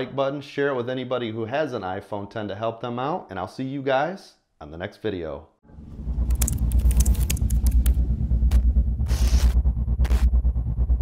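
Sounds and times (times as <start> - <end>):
deep bass rumble pulsing: 5.6 - 11.0
sharp glitchy clicks: 6.2 - 10.3
static-like hiss bursts: 9.0 - 10.2.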